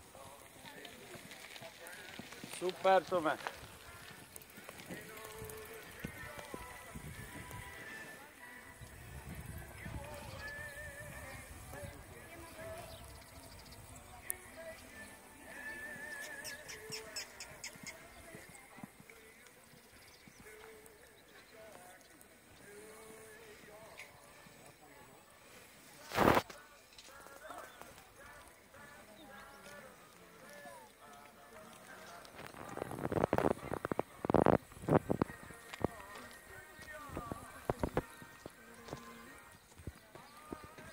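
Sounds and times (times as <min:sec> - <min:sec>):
background music: 0:00.0 - 0:40.9
faint voices talking: 0:00.0 - 0:40.9
hooves thudding on sand: 0:00.0 - 0:40.9.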